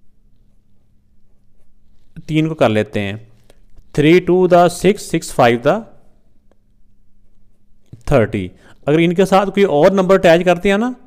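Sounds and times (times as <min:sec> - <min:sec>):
pen scratching on paper: 0:00.3 - 0:02.4.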